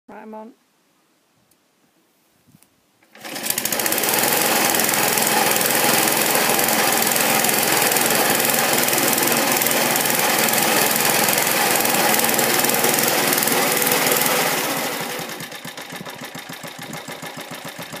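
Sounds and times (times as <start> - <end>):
lawnmower petrol engine running: 3.0 - 18.0.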